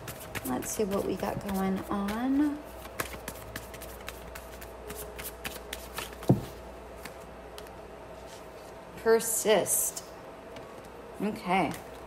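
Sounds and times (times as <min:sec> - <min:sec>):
cards being shuffled: 0:00.0 - 0:08.4.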